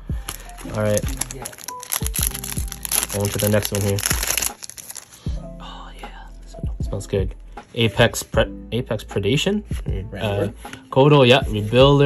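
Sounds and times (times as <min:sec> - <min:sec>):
background music: 0:00.0 - 0:12.0
foil wrappers crinkling: 0:00.2 - 0:05.3
wrapper tearing open: 0:00.2 - 0:05.3.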